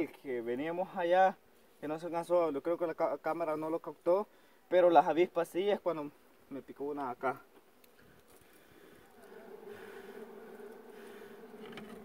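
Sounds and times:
honeybees buzzing: 7.5 - 12.0
close bee humming: 7.8 - 12.0.

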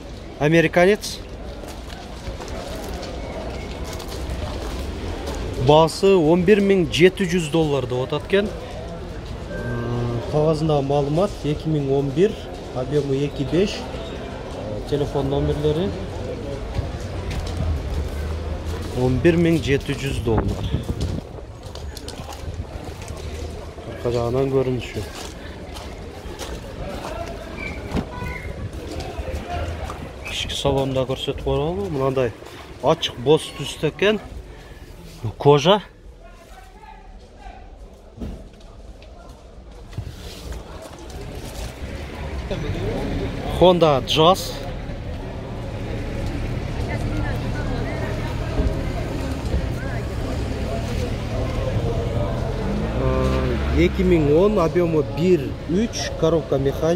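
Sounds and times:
faint background noise: 0.0 - 56.9
faint voices talking: 0.0 - 56.9
wind rumble on microphone: 20.2 - 23.2.

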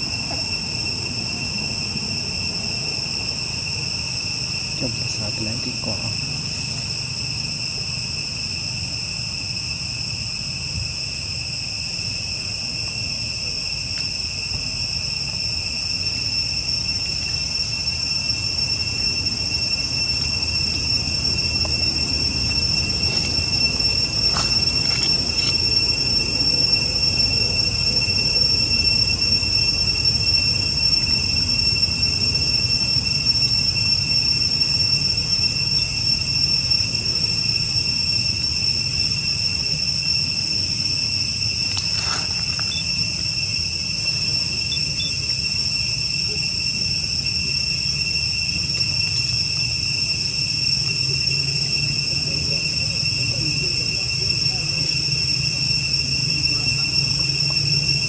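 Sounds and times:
insects droning: 0.0 - 58.0.

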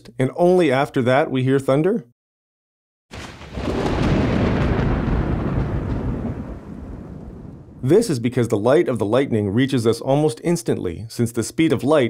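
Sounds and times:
thunder rumble: 3.1 - 8.4.

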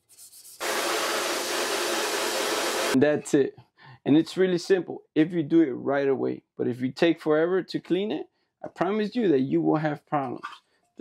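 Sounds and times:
pressure washer spraying metal: 0.6 - 3.0.

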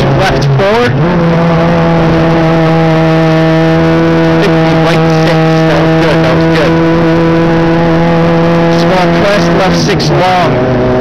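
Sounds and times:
race car engine at high revs: 0.0 - 11.0.

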